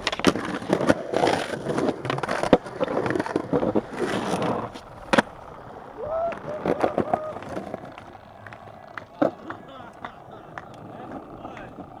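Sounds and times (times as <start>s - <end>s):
skateboard clack: 0.0s - 12.0s
skateboard wheels rolling on concrete: 0.0s - 12.0s
faint voices: 9.0s - 12.0s.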